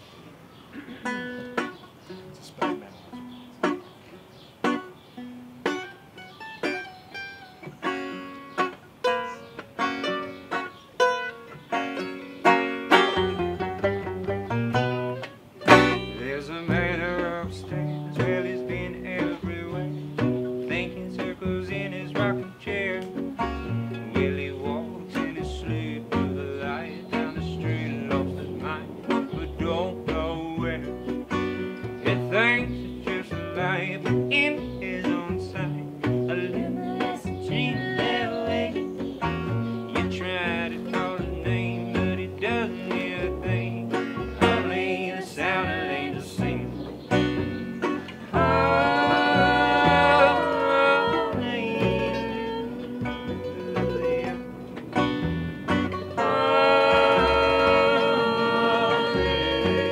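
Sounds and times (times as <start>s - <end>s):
plucked banjo: 0.5s - 59.9s
acoustic string band playing: 1.0s - 59.9s
low bass notes: 11.9s - 59.9s.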